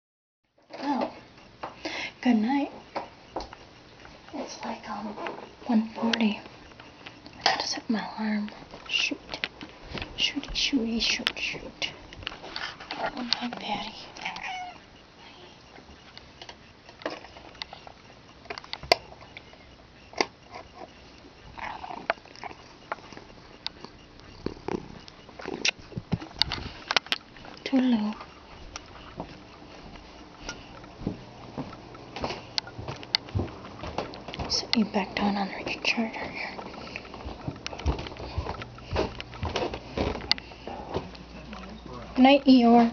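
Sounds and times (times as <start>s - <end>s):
cat meowing: 14.2s - 14.9s.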